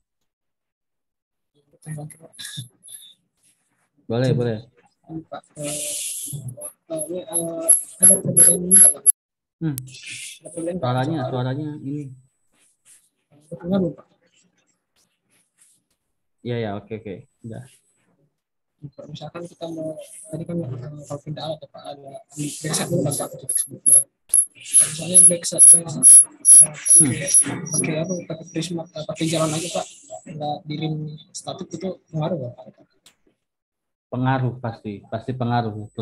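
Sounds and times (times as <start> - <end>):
garbled voice over a call: 5.1 - 9.1, 19.0 - 24.0, 24.6 - 28.5
rapid clicking distortion: 6.5 - 9.1, 23.2 - 27.9.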